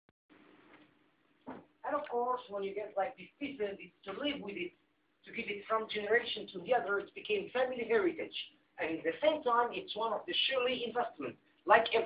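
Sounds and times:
man speaking: 1.8 - 12.0.

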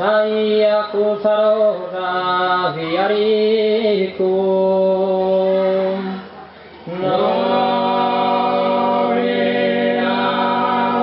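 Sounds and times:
male vocal group singing in harmony: 0.0 - 6.2, 6.9 - 11.0.

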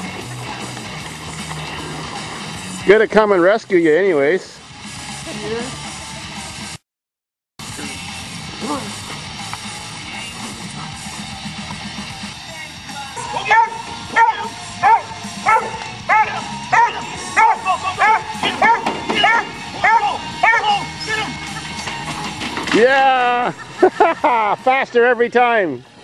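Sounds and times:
dog yipping: 13.2 - 21.3.

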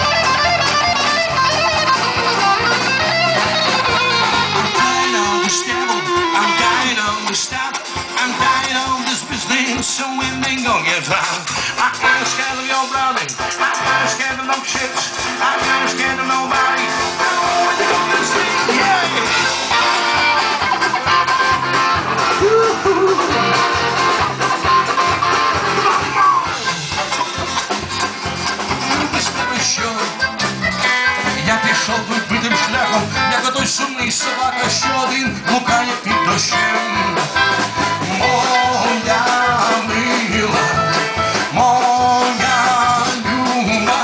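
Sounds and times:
steady beat: 0.0 - 43.7
accordion: 0.0 - 44.0
live rock band playing: 0.0 - 44.0
person singing: 4.6 - 19.9, 22.2 - 23.8, 28.8 - 30.2, 31.1 - 44.0.

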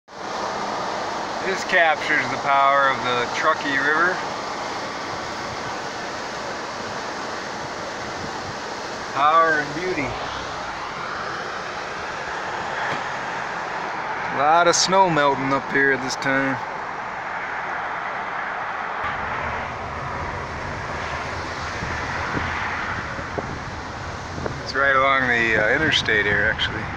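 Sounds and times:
river rapids roaring: 0.1 - 26.3
vehicle rumble: 0.1 - 26.9.

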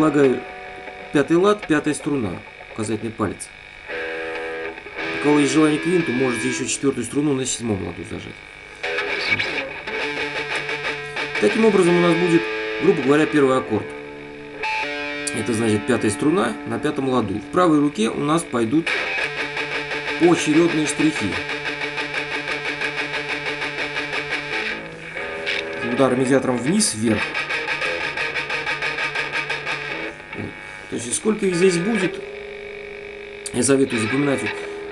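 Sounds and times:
electric guitar picked note: 3.9 - 7.0, 8.8 - 30.6.

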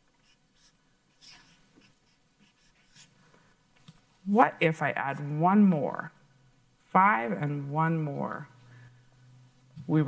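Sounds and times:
marker scratching on chart: 0.2 - 3.1.

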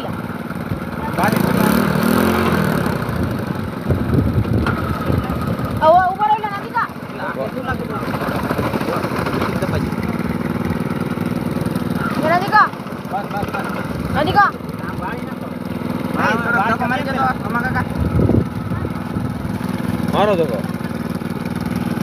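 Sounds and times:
propeller churning water: 0.0 - 22.0
small engine running: 0.0 - 22.0.

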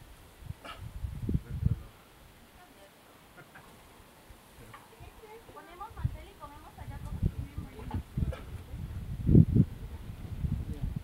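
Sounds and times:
wind buffeting microphone: 0.0 - 2.0, 5.0 - 11.0.

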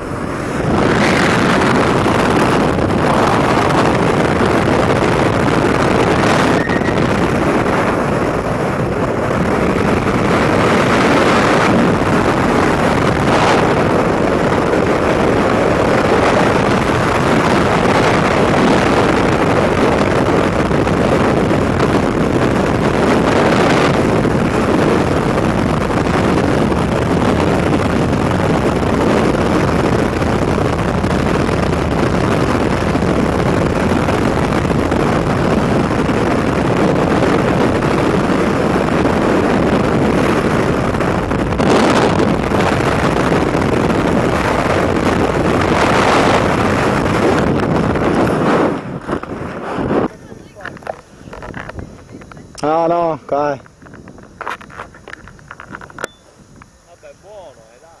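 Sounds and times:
freefall wind rushing: 0.0 - 58.0.

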